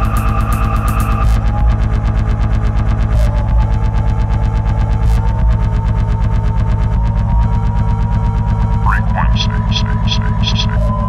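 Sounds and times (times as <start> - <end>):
techno music: 3.2 - 11.0.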